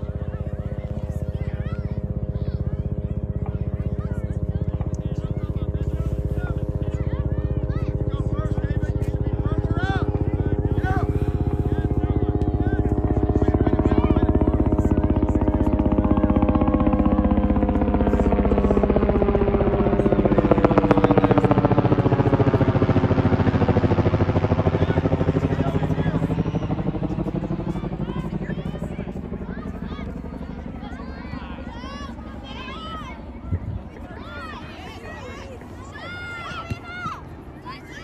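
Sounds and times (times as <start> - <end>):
loud throbbing engine drone: 0.0 - 38.0.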